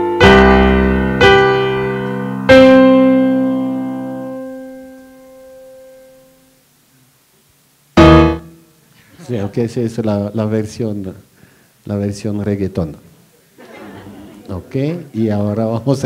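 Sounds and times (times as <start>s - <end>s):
piano chords: 0.0s - 6.4s, 8.0s - 8.8s.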